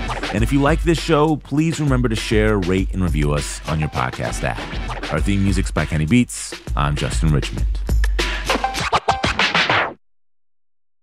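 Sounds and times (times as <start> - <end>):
beat with turntable scratching: 0.0 - 10.0.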